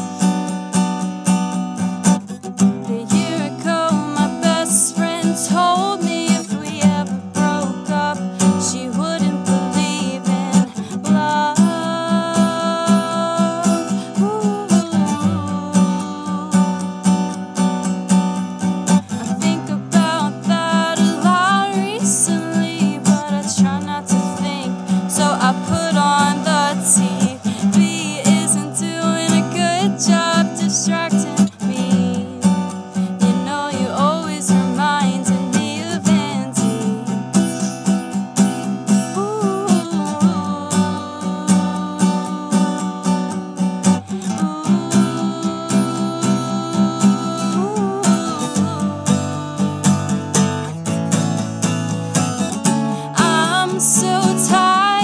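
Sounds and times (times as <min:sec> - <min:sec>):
woman singing: 0:00.0 - 0:00.9, 0:01.8 - 0:55.0
acoustic guitar strummed: 0:00.0 - 0:55.0.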